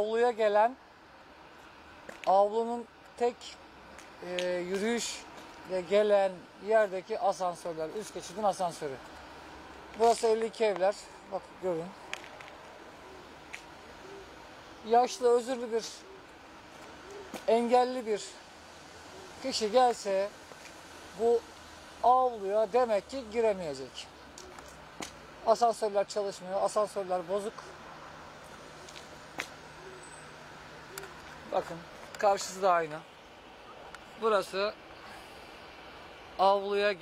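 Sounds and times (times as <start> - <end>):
low street hiss: 0.0 - 37.0.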